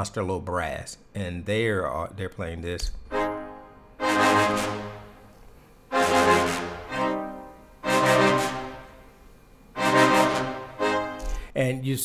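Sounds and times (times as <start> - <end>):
low brass stabs: 3.1 - 9.2, 9.8 - 11.5.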